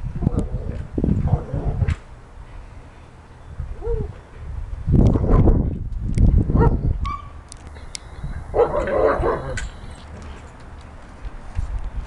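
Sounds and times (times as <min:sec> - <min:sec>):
dog barking: 0:08.5 - 0:09.6.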